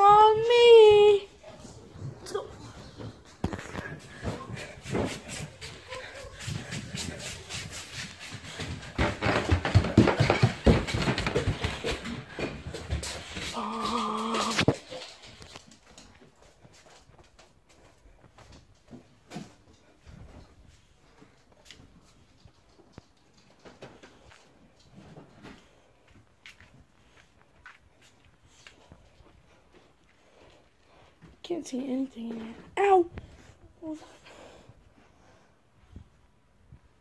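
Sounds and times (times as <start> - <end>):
children's quick footsteps: 2.1 - 19.1.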